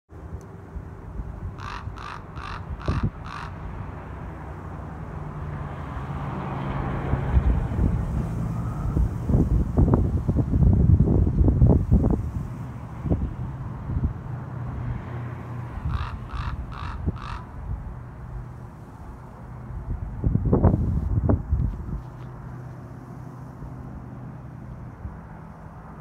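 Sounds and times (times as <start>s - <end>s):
wind buffeting microphone: 1.0s - 3.9s, 6.6s - 22.6s
crow cawing: 1.6s - 3.7s, 15.8s - 17.6s.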